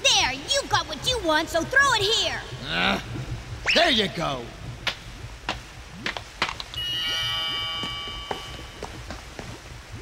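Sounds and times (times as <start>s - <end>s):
sparkling bell-like chime: 6.8s - 8.8s.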